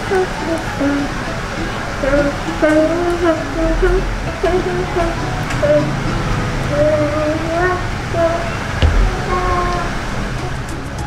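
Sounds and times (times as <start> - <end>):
person singing: 0.0 - 6.1, 6.7 - 11.0
short knock: 8.8 - 10.0
steady low rumble: 8.8 - 11.0.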